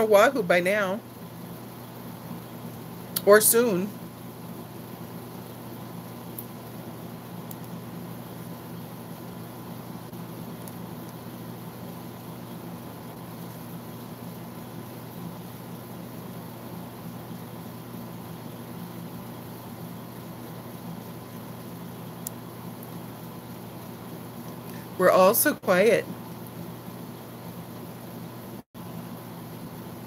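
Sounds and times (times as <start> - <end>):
motor or fan humming: 0.0 - 30.0.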